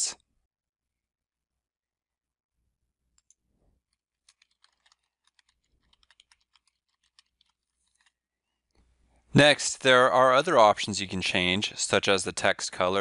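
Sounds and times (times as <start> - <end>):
faint keyboard typing: 3.1 - 8.8.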